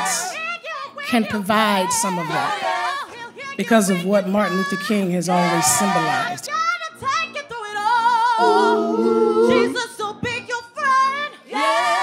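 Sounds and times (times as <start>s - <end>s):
women's choir singing: 2.0s - 3.5s, 4.4s - 6.5s, 7.8s - 10.1s, 11.1s - 12.0s.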